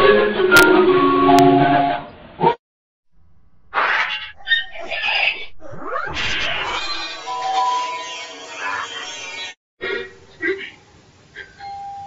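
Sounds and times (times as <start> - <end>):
cartoonish sound effects: 3.7 - 9.5
jumbled squeaky sounds: 3.8 - 9.6
rising glide: 4.4 - 8.9.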